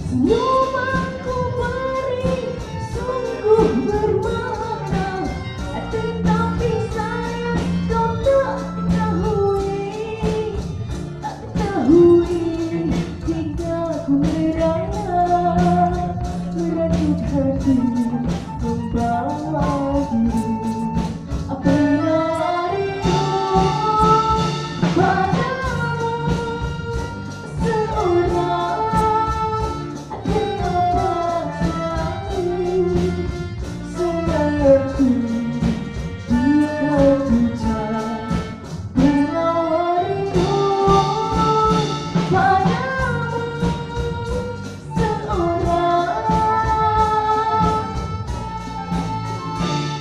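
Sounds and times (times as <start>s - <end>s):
woman singing into a microphone: 0.0s - 48.9s
acoustic guitars: 0.0s - 50.0s
drum kit steady beat: 0.0s - 50.0s
woman singing long notes: 11.3s - 33.3s.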